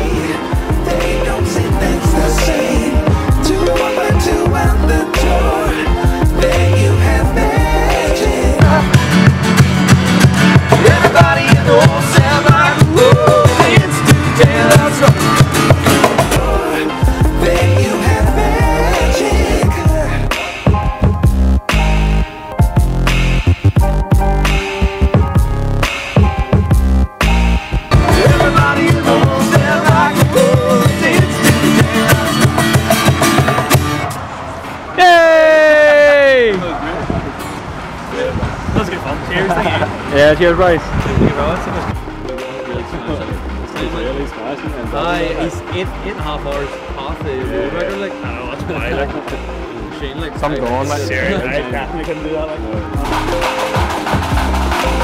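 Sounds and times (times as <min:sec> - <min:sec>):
person singing: 0:00.0 - 0:09.4, 0:10.6 - 0:20.8, 0:27.9 - 0:33.2
strummed acoustic guitars: 0:00.0 - 0:20.7, 0:27.9 - 0:34.2
cajon beat: 0:00.0 - 0:34.2, 0:40.9 - 0:55.0.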